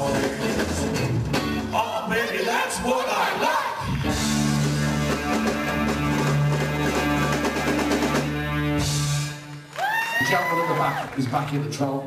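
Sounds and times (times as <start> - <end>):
live rock band playing: 0.0 - 11.1
electric guitar: 3.8 - 10.3.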